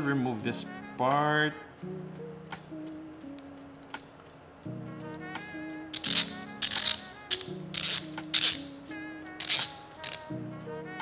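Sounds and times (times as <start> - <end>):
soft guitar music: 0.0 - 11.0
metal grinder parts scraping clicks: 5.9 - 8.7, 9.4 - 10.3.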